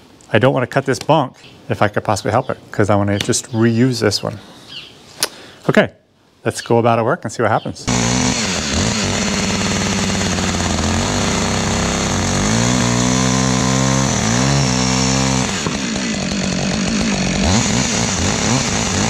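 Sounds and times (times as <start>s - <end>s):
chainsaw idling and revving: 7.9s - 19.0s.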